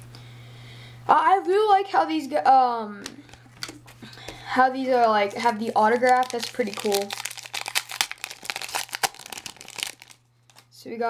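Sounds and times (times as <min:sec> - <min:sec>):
wrapper torn open and crinkled: 0:05.7 - 0:10.7.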